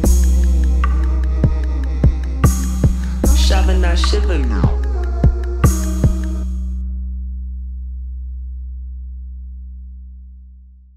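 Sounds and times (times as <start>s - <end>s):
deep bass note ringing: 0.0s - 10.9s.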